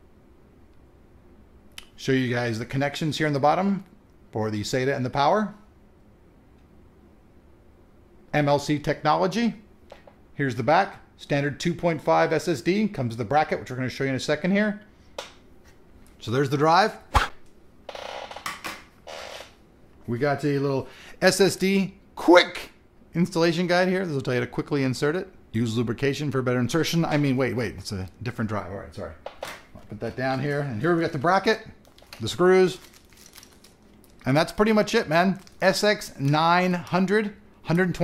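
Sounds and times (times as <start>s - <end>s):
paper packaging rustling: 29.8s - 36.4s.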